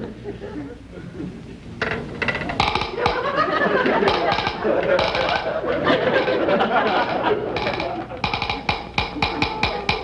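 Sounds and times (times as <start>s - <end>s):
studio audience laughing: 0.0s - 1.6s, 3.0s - 8.2s.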